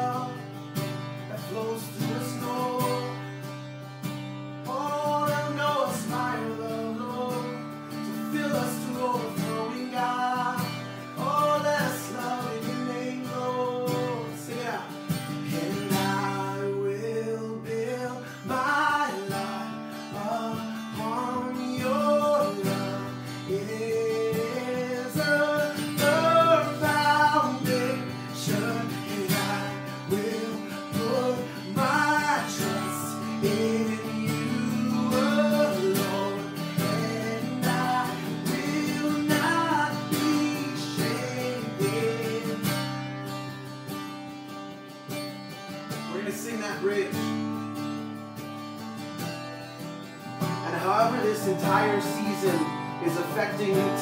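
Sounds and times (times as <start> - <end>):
man singing: 0.0 - 3.5, 4.6 - 43.1, 46.0 - 47.4, 50.4 - 54.0
strummed acoustic guitar: 0.0 - 54.0.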